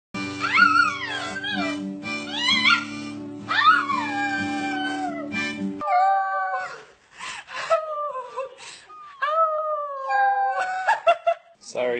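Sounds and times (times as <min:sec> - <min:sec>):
dog howling: 0:00.4 - 0:06.8.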